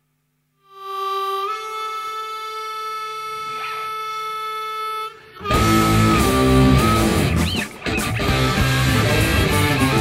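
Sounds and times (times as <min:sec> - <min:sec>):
harmonica note held: 0:00.6 - 0:10.0.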